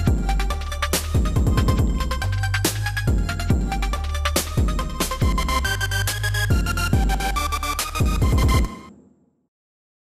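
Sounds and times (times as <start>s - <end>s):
electronic trap beat: 0.0s - 8.8s.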